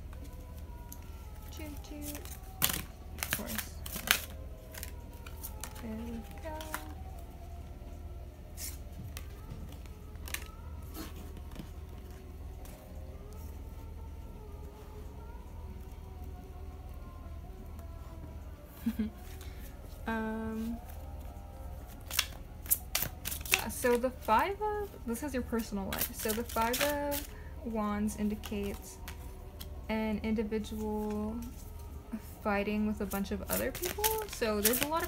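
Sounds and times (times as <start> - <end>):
soft background music: 0.0 - 35.0
cards snapping and sliding: 22.0 - 23.6.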